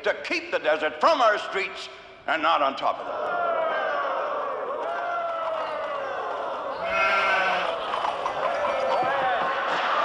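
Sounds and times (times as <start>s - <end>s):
sheep bleating: 6.8s - 7.8s.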